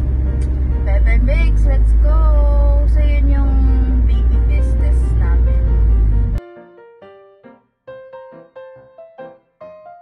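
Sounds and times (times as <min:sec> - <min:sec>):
car road and engine rumble: 0:00.0 - 0:06.4
background music: 0:00.0 - 0:10.0.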